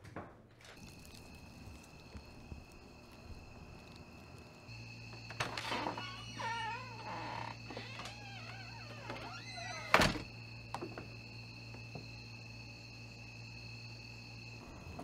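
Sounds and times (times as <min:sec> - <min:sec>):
door hinge creaking: 0:05.3 - 0:10.3
door banging shut: 0:05.4 - 0:10.3.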